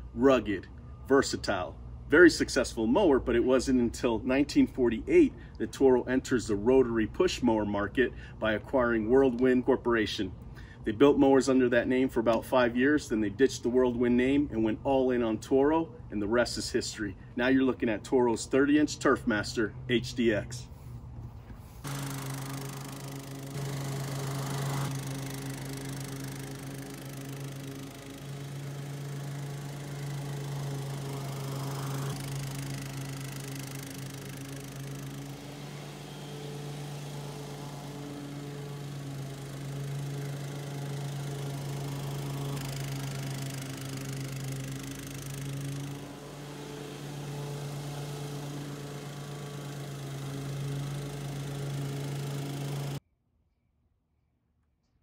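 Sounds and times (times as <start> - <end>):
lawn mower engine running: 0.0 - 1.2, 21.6 - 53.0.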